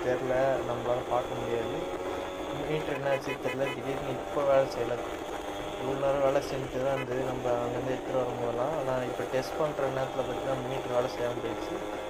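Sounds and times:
man talking: 0:00.0 - 0:05.1, 0:05.8 - 0:11.9
motorcycle engine riding: 0:00.0 - 0:12.0.

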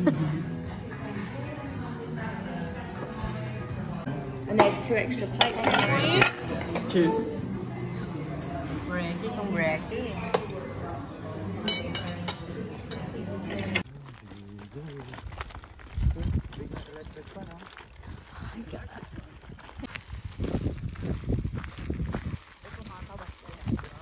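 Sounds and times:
cutlery clinking on plates: 0:04.6 - 0:07.2, 0:11.6 - 0:13.8
wind gusting against microphone: 0:15.2 - 0:24.0.

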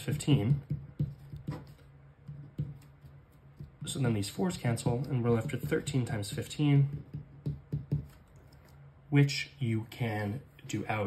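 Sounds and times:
pen writing on paper: 0:00.4 - 0:03.9.

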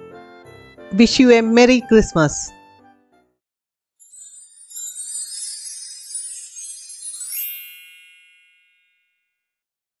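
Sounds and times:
ringing bell-like chime: 0:04.0 - 0:09.6.

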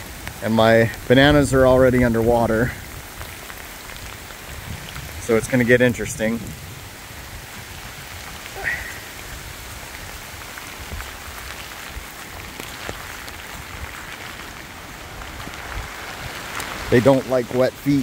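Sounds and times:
rain falling on leaves: 0:00.0 - 0:18.0.

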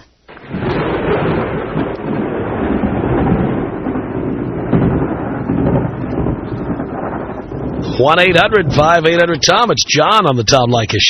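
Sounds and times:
wind and rain rushing: 0:00.0 - 0:11.0
thunder: 0:00.3 - 0:09.7.

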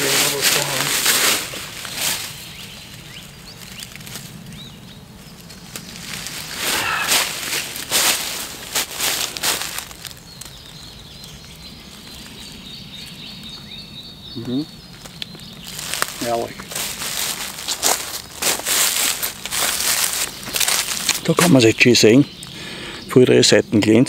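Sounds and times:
footsteps rustling through leaves: 0:00.0 - 0:13.3, 0:15.0 - 0:21.7
faint bird chirps: 0:10.2 - 0:16.6.

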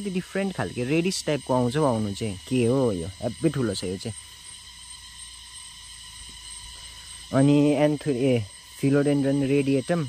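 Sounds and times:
thin high whine: 0:00.0 - 0:10.0.

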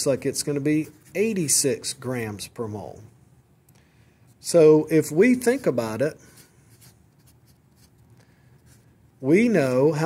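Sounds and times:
marker scratching on paper: 0:05.4 - 0:08.9.

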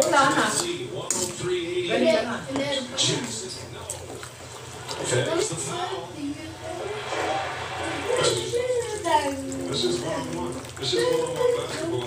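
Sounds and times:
television commentator talking: 0:00.0 - 0:12.0.

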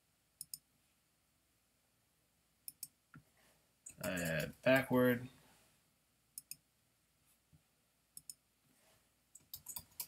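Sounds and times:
computer mouse double-clicks: 0:00.4 - 0:00.6.

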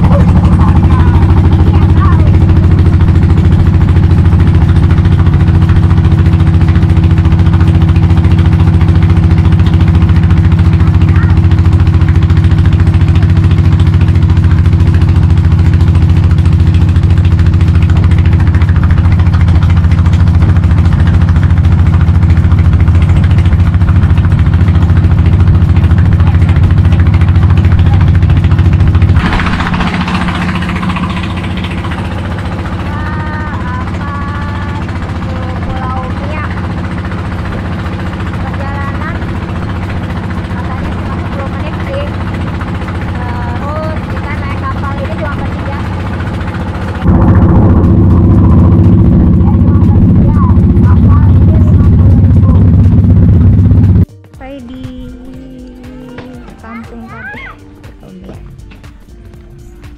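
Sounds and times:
boat engine droning: 0:00.0 - 0:59.9.

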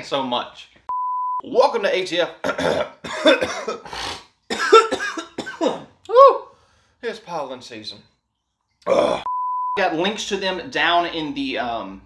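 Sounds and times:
man coughing: 0:02.4 - 0:06.0.

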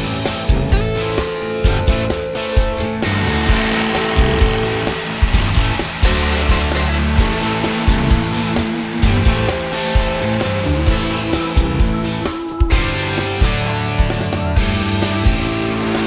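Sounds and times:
rock music: 0:00.0 - 0:16.0
reciprocating saw cutting log: 0:03.0 - 0:12.1, 0:15.7 - 0:16.0.

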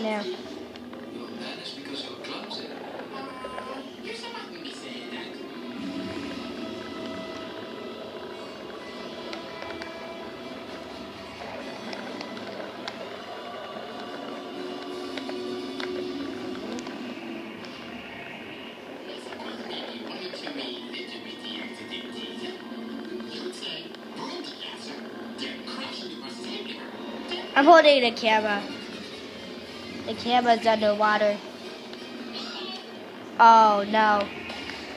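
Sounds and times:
film music from television: 0:00.0 - 0:34.9
television dialogue: 0:00.0 - 0:34.9.

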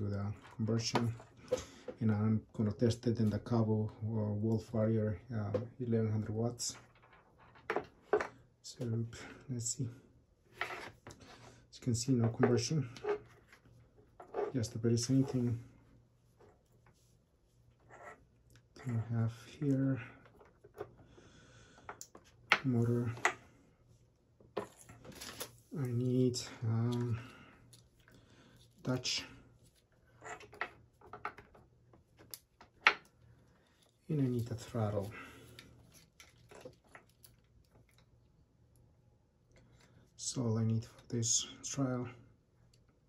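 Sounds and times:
person speaking: 0:11.7 - 0:13.2, 0:14.4 - 0:15.7, 0:22.6 - 0:23.4, 0:25.7 - 0:27.5, 0:28.8 - 0:29.5, 0:34.0 - 0:35.6
hands handling wires: 0:24.4 - 0:38.2.

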